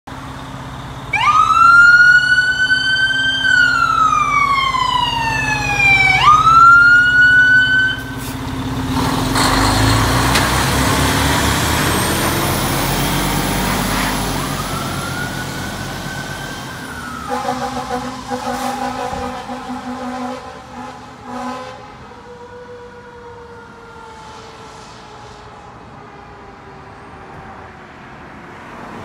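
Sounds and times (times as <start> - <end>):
truck engine rumbling: 0.1 - 27.1
fire engine siren wailing: 0.2 - 28.3.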